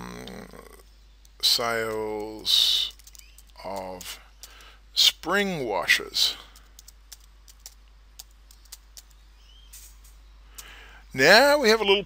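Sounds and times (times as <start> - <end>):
faint keyboard typing: 1.2 - 5.4, 6.0 - 9.2.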